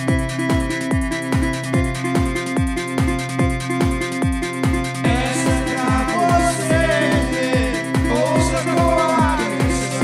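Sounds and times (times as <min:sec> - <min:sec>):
electronic kick drum: 0:00.0 - 0:10.0.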